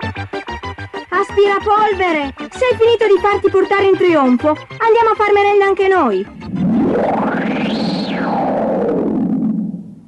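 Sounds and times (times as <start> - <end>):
synthesizer gliding down in pitch: 6.1 - 10.0.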